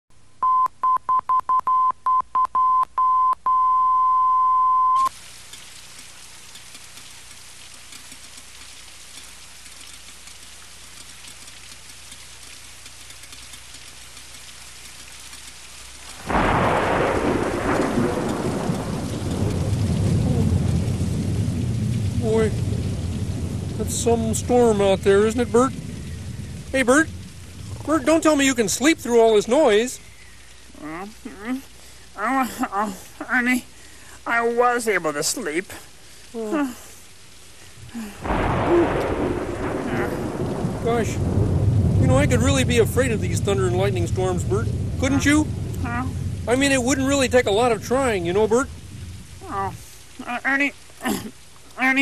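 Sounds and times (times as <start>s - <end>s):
high test beep: 0.4s - 5.1s
rain hissing: 5.0s - 52.0s
thunderclap rumbling: 16.1s - 30.9s, 37.7s - 51.3s.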